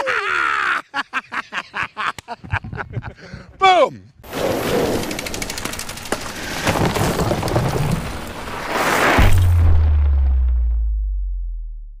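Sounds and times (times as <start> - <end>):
rapid crackling clicks: 4.8 - 8.2
deep boom: 9.2 - 12.0.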